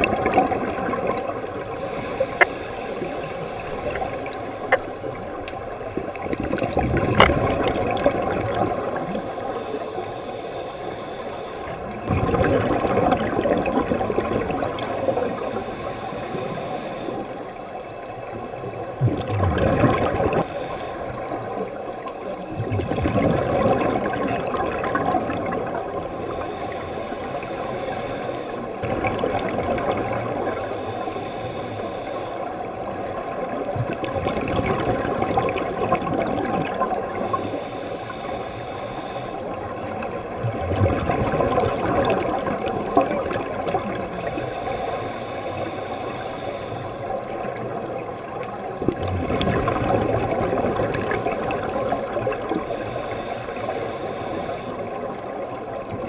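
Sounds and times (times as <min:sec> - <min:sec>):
underwater exhaust bubbles gurgling: 0:00.0 - 0:56.0.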